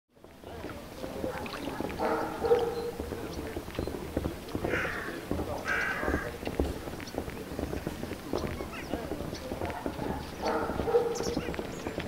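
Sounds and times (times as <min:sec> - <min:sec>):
footsteps on wooden boards: 0:00.2 - 0:12.0.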